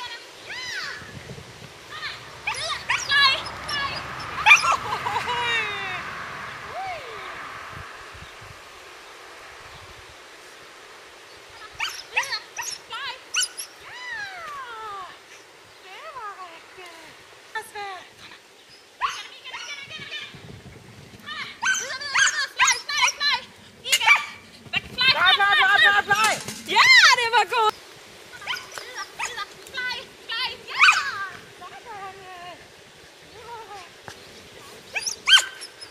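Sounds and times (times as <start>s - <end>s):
dog yipping and whining: 2.5s - 4.8s, 11.8s - 13.8s, 28.4s - 29.4s, 34.9s - 35.9s.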